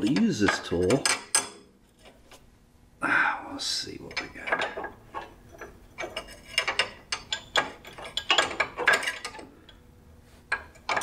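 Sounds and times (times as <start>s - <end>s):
wrench clicking and scraping metal: 4.1s - 9.8s.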